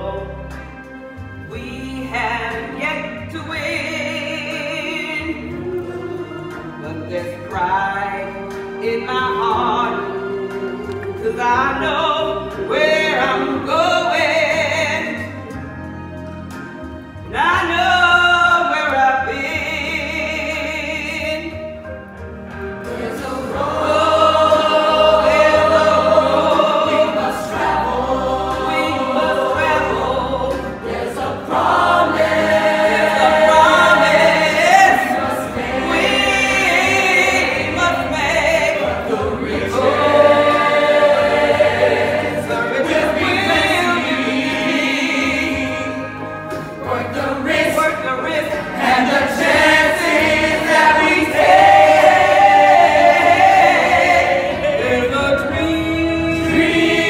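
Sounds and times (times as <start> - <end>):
musical accompaniment: 0.0 - 57.0
young voices chorus singing: 22.9 - 45.9, 48.7 - 57.0.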